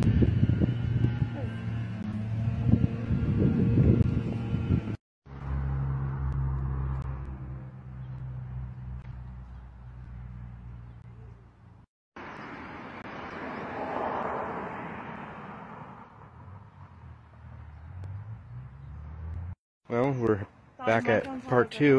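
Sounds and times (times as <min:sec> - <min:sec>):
low rumble: 0:00.0 - 0:10.9.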